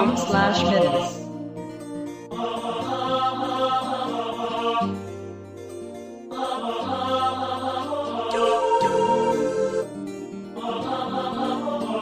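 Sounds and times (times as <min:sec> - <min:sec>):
sampled instrument accompaniment: 0:00.0 - 0:12.0
synthesized lead melody: 0:08.1 - 0:10.5.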